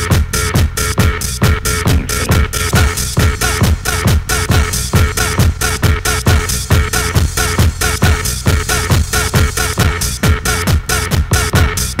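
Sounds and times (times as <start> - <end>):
electronic club dance music: 1.8 - 5.5.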